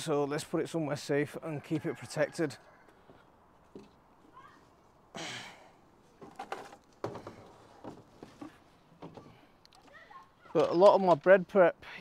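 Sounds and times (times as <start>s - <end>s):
footsteps over garden debris: 2.8s - 5.1s, 5.9s - 11.6s.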